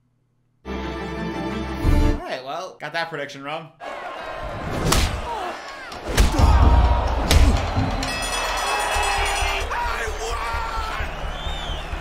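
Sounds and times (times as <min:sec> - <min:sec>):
shouting voices: 0:03.8 - 0:12.0.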